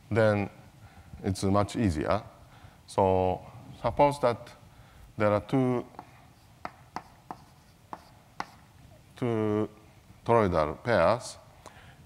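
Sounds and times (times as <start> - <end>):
chalk tapping on blackboard: 5.9 - 8.7.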